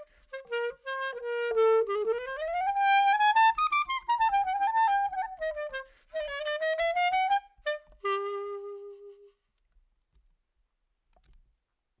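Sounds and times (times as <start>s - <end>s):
faint clicks: 11.1s - 11.7s.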